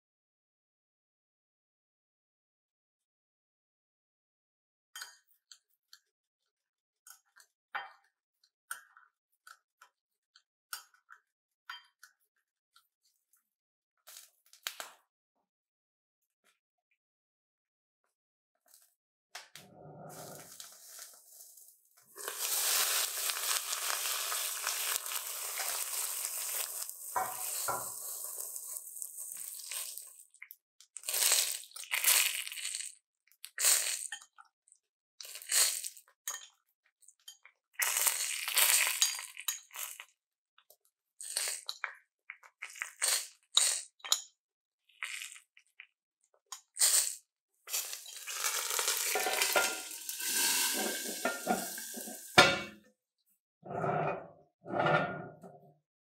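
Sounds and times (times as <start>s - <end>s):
food sizzling in a pot: 20.4s - 30.4s, 31.0s - 33.0s, 33.6s - 34.2s, 35.3s - 36.0s, 37.8s - 40.0s, 46.8s - 52.8s
cast-iron lid set on pot: 27.1s - 28.2s, 49.0s - 52.8s.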